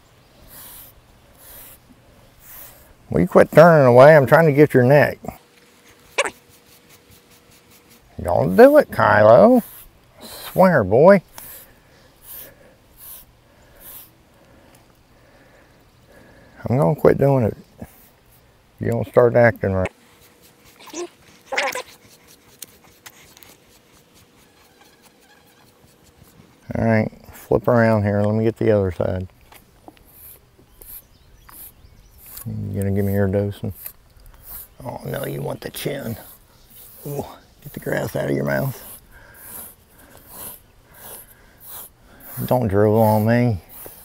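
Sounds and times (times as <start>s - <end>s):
bull breathing and snuffling: 0.4s - 18.6s, 29.9s - 44.0s
cow calling: 6.2s - 6.4s.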